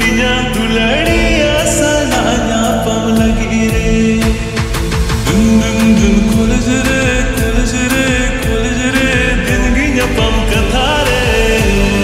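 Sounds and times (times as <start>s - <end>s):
person singing: 0.0s - 12.0s
steady beat: 0.0s - 12.0s.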